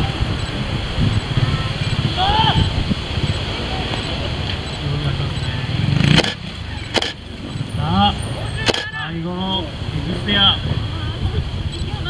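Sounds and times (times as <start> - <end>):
motorcycle engine revving: 0.0 - 12.0
spectators' voices: 0.0 - 12.0
sharp cracks: 6.0 - 7.4, 8.6 - 9.0.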